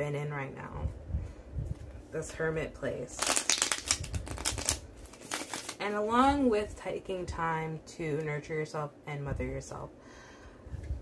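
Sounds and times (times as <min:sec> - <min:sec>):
cards being shuffled: 0:03.2 - 0:05.8.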